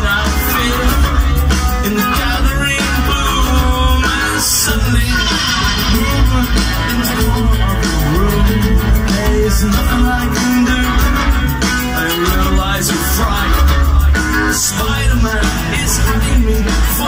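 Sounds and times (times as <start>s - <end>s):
live rock band playing: 0.0s - 17.0s
steady bass notes: 0.0s - 17.0s.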